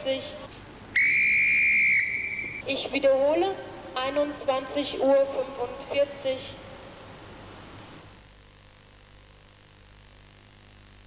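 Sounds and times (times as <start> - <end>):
railway whistle blast: 1.0 - 2.7.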